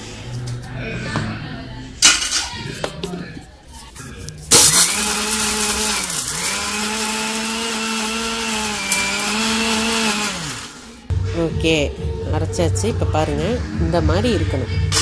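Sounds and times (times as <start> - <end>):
mixer grinder motor whine: 4.5 - 11.1.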